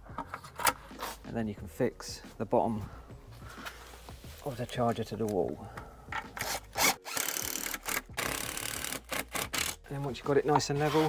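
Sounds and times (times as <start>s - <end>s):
cordless drill driving screws: 6.4s - 9.8s.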